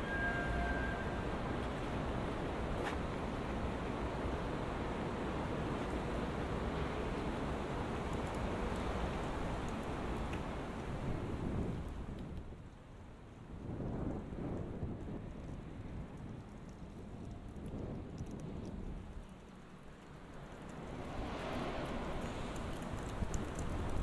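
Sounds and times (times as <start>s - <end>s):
low rushing street noise: 0.0s - 11.9s, 12.6s - 24.0s
faint light ticks: 7.9s - 11.0s, 11.8s - 12.8s, 14.5s - 24.0s.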